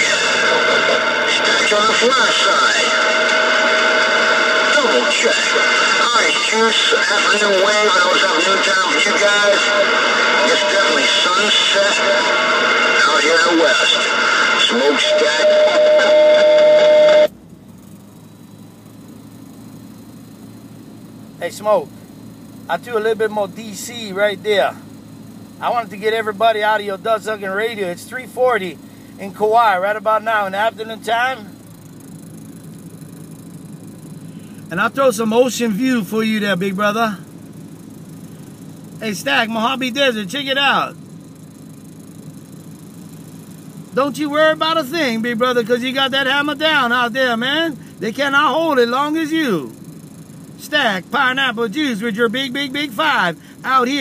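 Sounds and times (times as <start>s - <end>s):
loud radio static: 0.0s - 17.3s, 25.6s - 31.7s, 43.9s - 49.8s, 50.6s - 54.0s
radio whistle tone: 0.0s - 17.3s.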